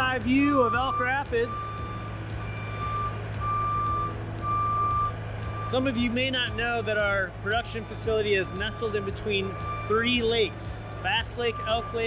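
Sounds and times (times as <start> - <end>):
low engine hum: 0.0 - 12.0
motion alarm beeping: 0.3 - 6.8, 8.4 - 12.0.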